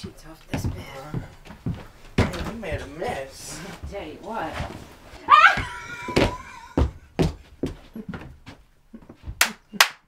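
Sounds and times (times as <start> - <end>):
woman laughing breathlessly: 5.5 - 7.2.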